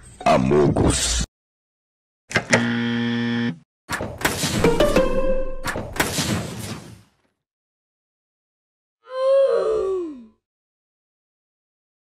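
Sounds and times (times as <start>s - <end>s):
harsh electronic buzzer: 2.5s - 3.6s.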